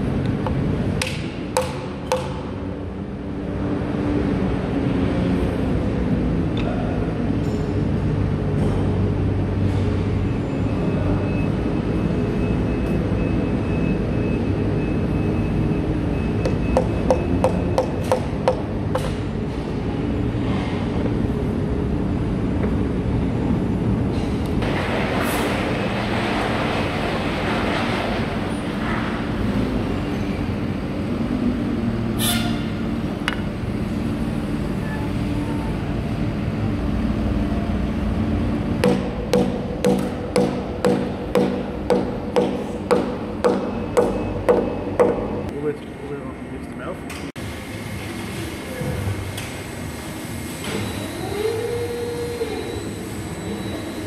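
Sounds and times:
hammer knocking wood: 38.8 - 45.4.

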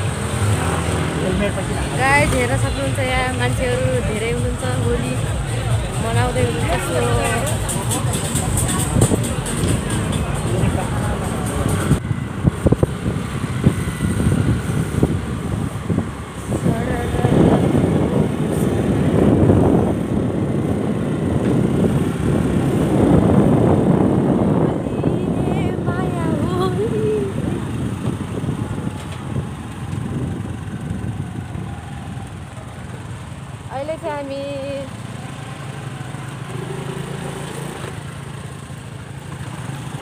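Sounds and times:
wind buffeting microphone: 0.0 - 34.9
motorcycle engine: 0.0 - 40.0
road noise: 0.0 - 40.0.

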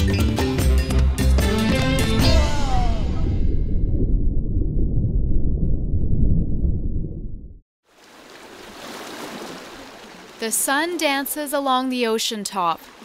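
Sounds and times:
small waves lapping a rocky shore: 7.9 - 13.0.

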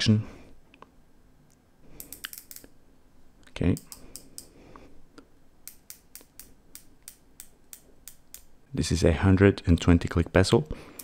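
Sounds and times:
watch bezel ratcheting clicks: 2.0 - 2.7.

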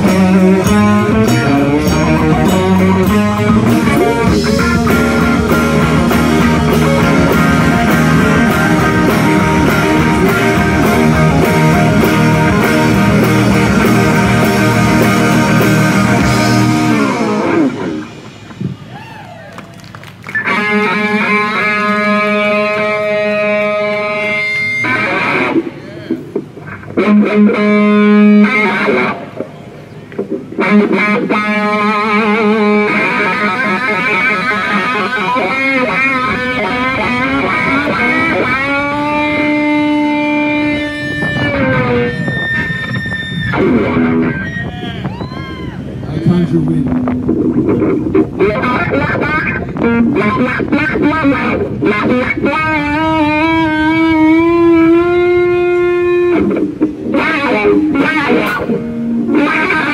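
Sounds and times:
overdriven electric guitar solo: 0.0 - 59.9
rock band playing: 0.0 - 59.9.

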